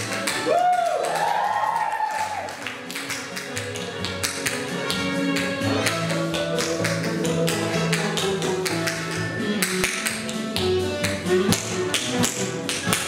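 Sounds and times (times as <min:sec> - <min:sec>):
instrumental backing track: 0:02.6 - 0:13.0.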